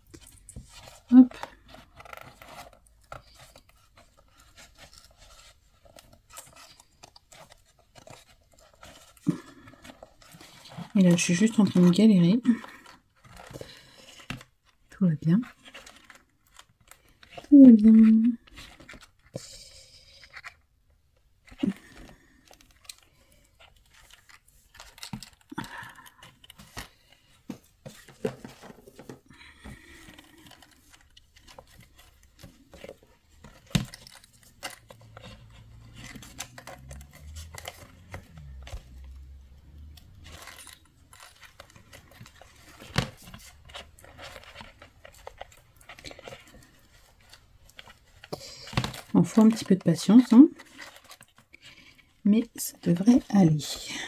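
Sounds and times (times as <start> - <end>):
handling cardboard box: 0.1 - 11.8, 21.3 - 53.6.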